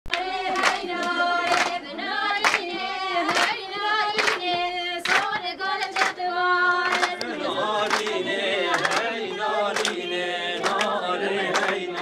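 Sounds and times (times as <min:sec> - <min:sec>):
hands clapping a beat: 0:00.1 - 0:12.0
women singing together: 0:00.1 - 0:12.0.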